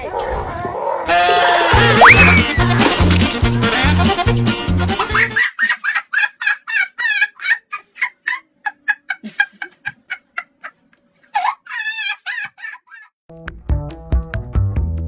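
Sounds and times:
chicken clucking and cackling: 0:05.1 - 0:13.0.

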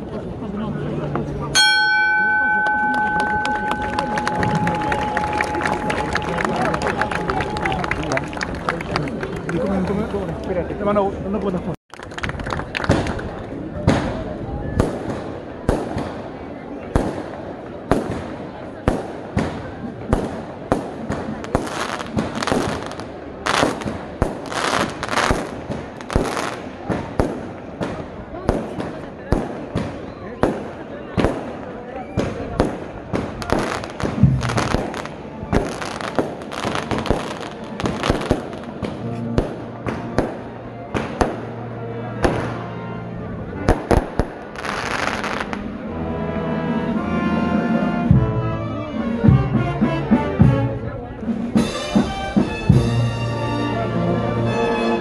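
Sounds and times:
crowd voices: 0:00.0 - 0:55.0
firecrackers banging: 0:01.6 - 0:08.6, 0:11.9 - 0:42.8, 0:43.5 - 0:45.7.

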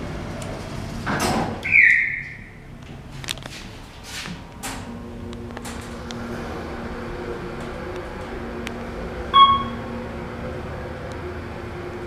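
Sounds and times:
elevator doors sliding shut: 0:04.0 - 0:12.0
short loud high tone: 0:09.4 - 0:09.8.

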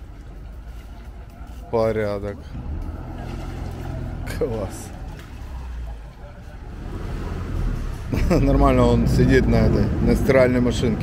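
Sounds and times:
motorboat engine low hum: 0:00.0 - 0:11.0.

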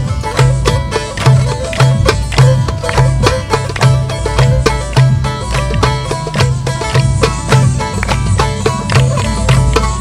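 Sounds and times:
plucked string instrument: 0:00.0 - 0:10.0
steady beat: 0:00.0 - 0:10.0.

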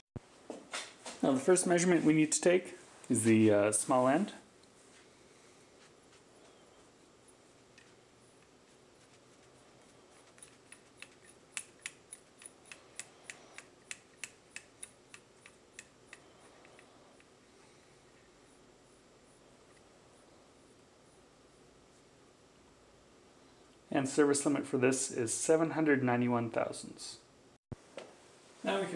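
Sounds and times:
micrometer ratchet clicking: 0:10.2 - 0:17.3.

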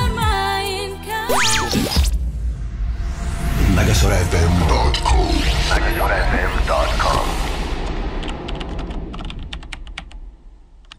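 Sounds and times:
low rumble: 0:02.0 - 0:10.9.

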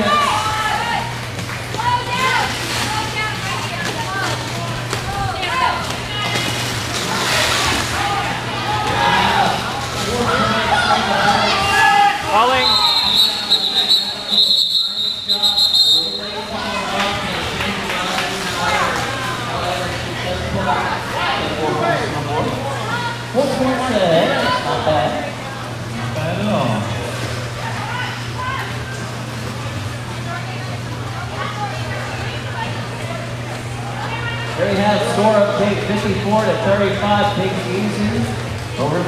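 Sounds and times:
people talking and calling out: 0:00.0 - 0:39.0
referee's whistle blast: 0:12.6 - 0:16.4.

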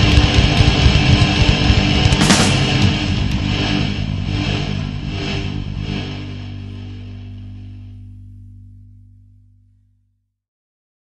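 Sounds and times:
rock chord ringing out: 0:00.0 - 0:10.0.

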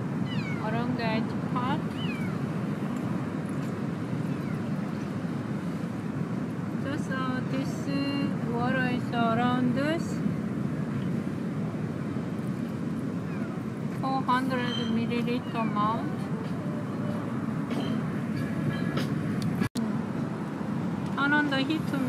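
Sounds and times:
low rumbling background noise: 0:00.0 - 0:22.0.

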